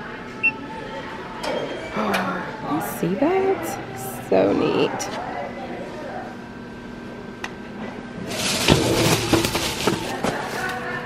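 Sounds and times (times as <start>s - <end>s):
plastic package rustling: 8.2s - 11.0s
package knocking against metal locker: 8.5s - 10.7s.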